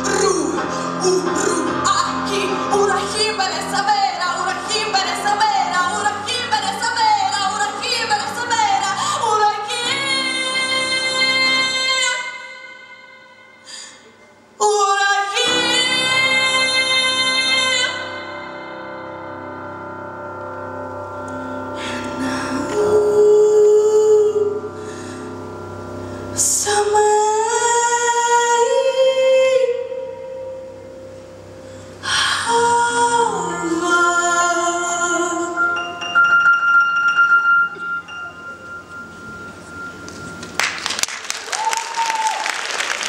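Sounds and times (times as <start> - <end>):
woman singing: 0.0 - 13.4, 14.6 - 18.8, 21.8 - 24.7, 26.4 - 30.5, 32.0 - 35.9
piano accompaniment: 15.2 - 29.0, 30.1 - 41.4.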